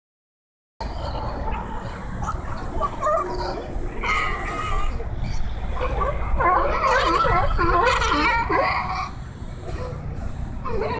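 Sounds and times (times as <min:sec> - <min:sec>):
sea lions barking and growling: 0:00.8 - 0:10.9.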